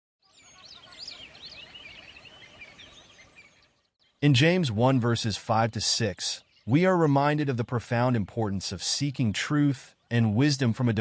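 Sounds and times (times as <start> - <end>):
small birds chirping: 0.2 - 11.0.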